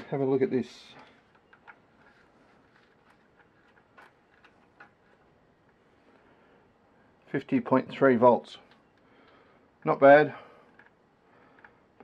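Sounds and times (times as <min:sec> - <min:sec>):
faint clicks and taps of test probes: 0:01.2 - 0:02.2, 0:08.6 - 0:09.9, 0:10.7 - 0:12.0.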